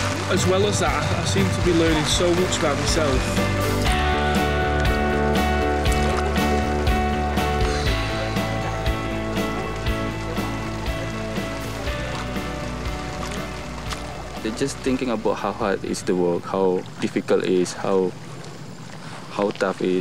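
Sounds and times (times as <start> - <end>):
background music with chords and beat: 0.0 - 14.5.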